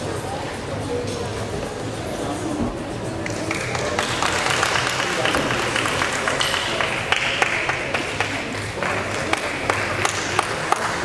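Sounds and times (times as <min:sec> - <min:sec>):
hubbub of voices: 0:00.0 - 0:11.0.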